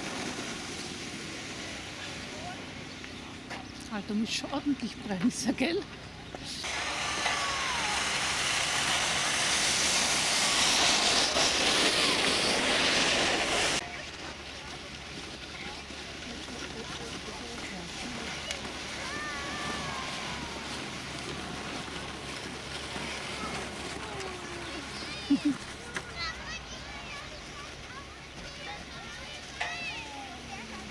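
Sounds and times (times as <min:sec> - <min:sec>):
distant voices: 0:00.0 - 0:30.9
loud steady hiss: 0:06.5 - 0:13.8.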